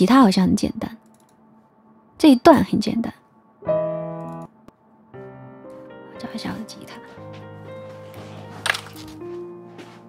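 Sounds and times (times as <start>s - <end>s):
keyboard background music: 0.0s - 10.0s.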